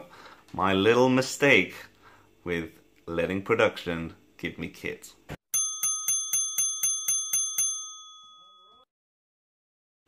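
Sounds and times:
small bell ringing: 0:05.5 - 0:08.9.

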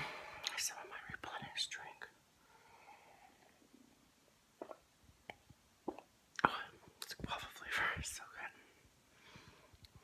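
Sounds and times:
woman whispering: 0:00.4 - 0:02.2, 0:06.4 - 0:08.7.

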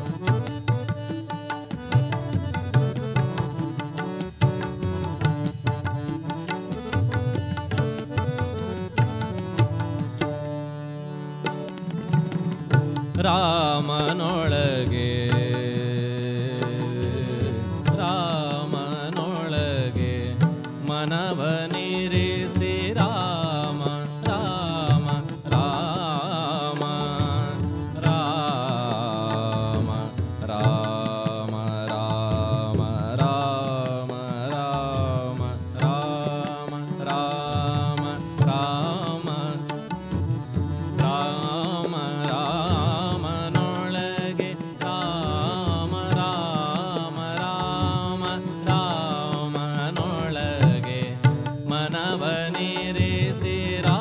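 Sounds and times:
devotional music: 0:00.0 - 0:54.0
harmonium chords and melody: 0:00.0 - 0:54.0
tabla strokes: 0:00.0 - 0:54.0.

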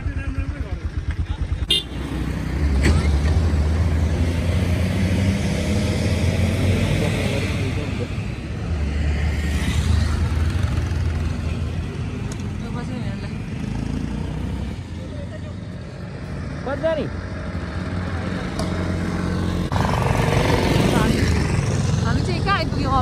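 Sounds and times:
motorcycle engine running: 0:00.0 - 0:02.8, 0:19.6 - 0:23.0.

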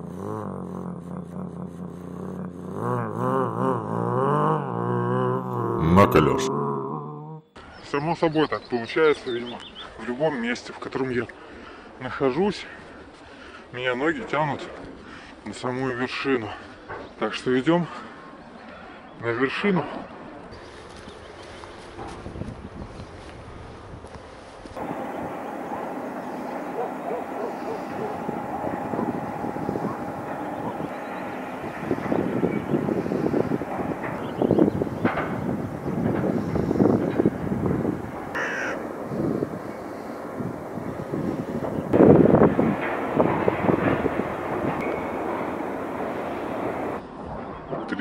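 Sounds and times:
outdoor background noise: 0:00.0 - 0:48.0
harsh bird calls: 0:24.8 - 0:42.0.

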